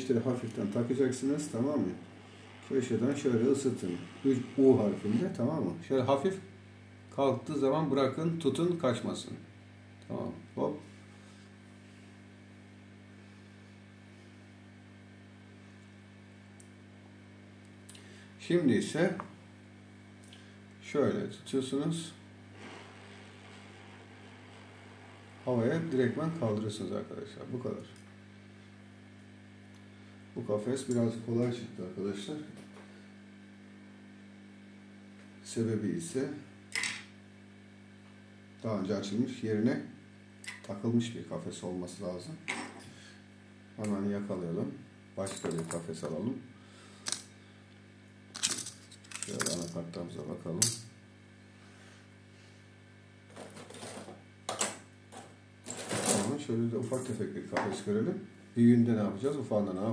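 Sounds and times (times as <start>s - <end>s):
faint low electrical hum: 0.0s - 59.9s
clicks of small items handled: 48.3s - 49.8s
rustles of small items: 48.4s - 49.8s.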